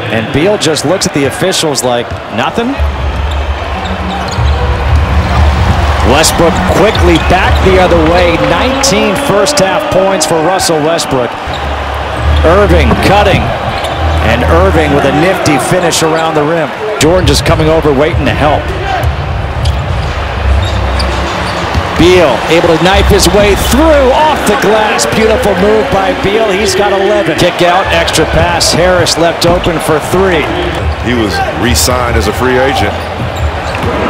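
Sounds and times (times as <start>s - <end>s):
low arena music: 0.0s - 34.0s.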